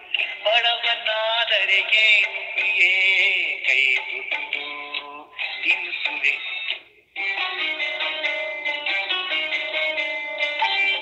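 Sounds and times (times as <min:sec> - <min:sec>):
person singing: 0:00.0 - 0:11.0
melodic instrumental accompaniment: 0:07.2 - 0:11.0.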